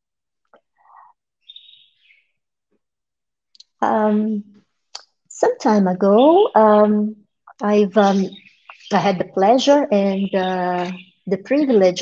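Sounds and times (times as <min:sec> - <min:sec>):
bird chirp: 0:00.6 - 0:02.6, 0:03.6 - 0:12.0.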